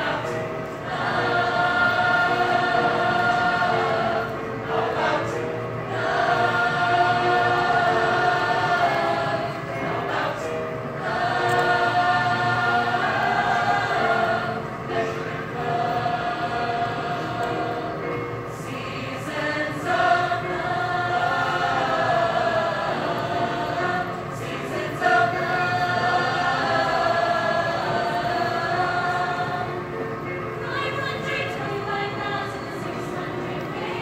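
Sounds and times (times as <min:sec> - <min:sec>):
choir singing in harmony: 0:00.0 - 0:34.0.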